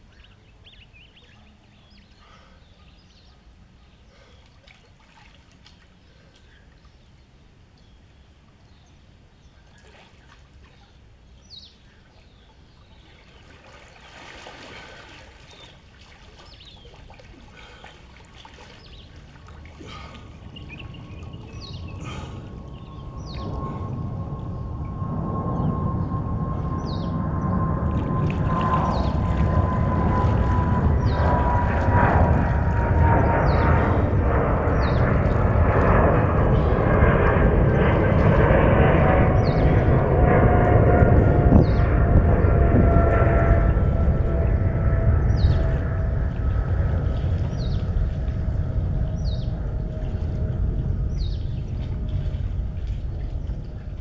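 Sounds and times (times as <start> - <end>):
aircraft rumbling roar: 0.0 - 54.0
aircraft engine whine: 18.7 - 54.0.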